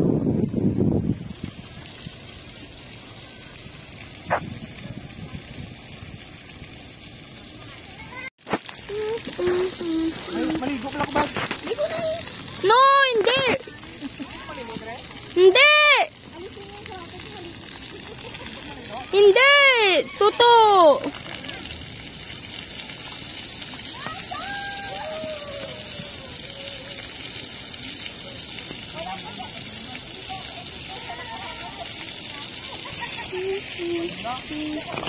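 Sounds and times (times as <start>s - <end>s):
water jets spraying: 0.0s - 35.0s.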